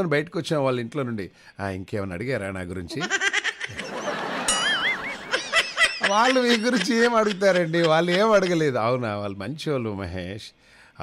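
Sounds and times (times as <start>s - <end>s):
man talking: 6.0s - 10.5s.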